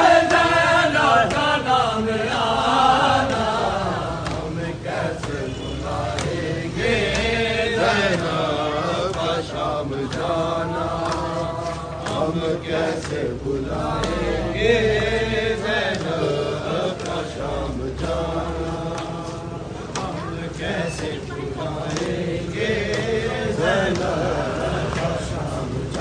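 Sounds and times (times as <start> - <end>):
men chanting a lament: 0.0 - 26.0.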